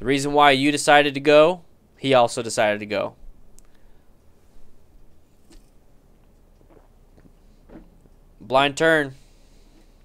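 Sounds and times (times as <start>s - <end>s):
man swallowing from a can: 5.4s - 8.1s
small mouth sounds: 5.4s - 8.2s.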